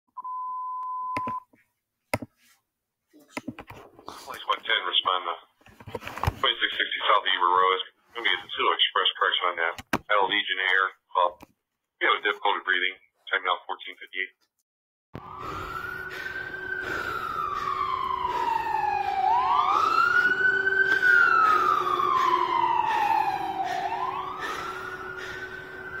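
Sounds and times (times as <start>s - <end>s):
radio alert beep: 0.2s - 1.4s
ambulance siren wailing: 15.2s - 26.0s
steady lower tone: 15.2s - 26.0s.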